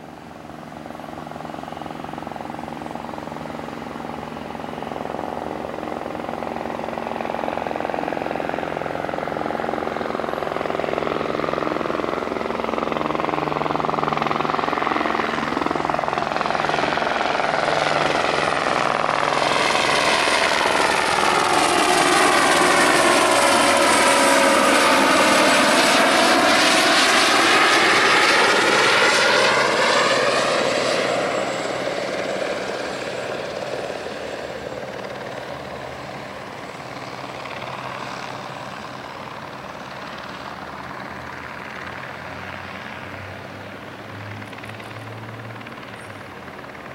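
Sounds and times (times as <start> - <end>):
helicopter passing with turbine whine: 0.0 - 46.9.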